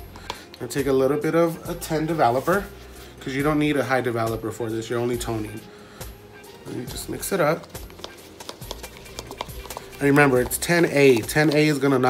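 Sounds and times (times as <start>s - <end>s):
brush scraping plastic bowl: 6.3s - 12.0s.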